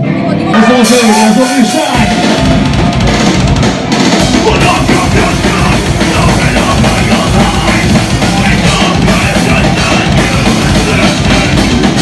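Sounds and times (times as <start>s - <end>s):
distorted electric guitars: 0.0s - 12.0s
drum kit: 0.0s - 12.0s
metalcore band playing live: 0.0s - 12.0s
bass drum pounding: 0.8s - 12.0s.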